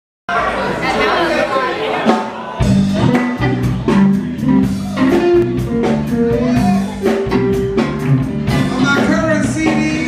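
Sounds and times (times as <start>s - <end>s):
indistinct chatter of voices: 0.3s - 5.3s.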